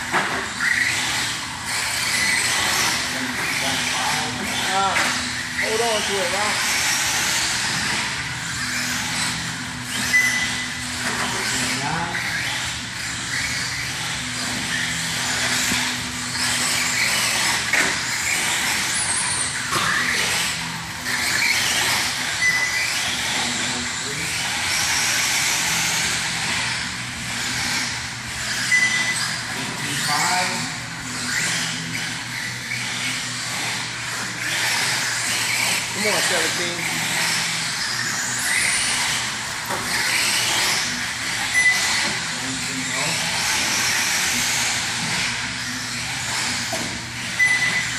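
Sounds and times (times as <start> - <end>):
rc car motor whine: 0.0 - 47.9
tyre squeals: 0.3 - 1.3, 8.2 - 16.0, 18.9 - 24.3, 40.8 - 43.7.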